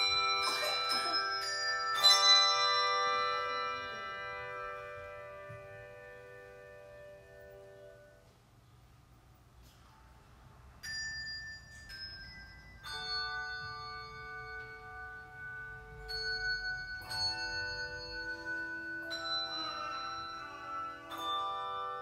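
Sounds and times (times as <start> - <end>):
handbell choir ringing chords: 0.0 - 8.2, 10.8 - 22.0.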